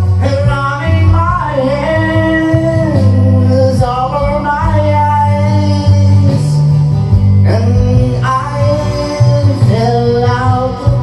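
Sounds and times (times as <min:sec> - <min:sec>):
backing music: 0:00.0 - 0:11.0
man singing: 0:00.0 - 0:11.0.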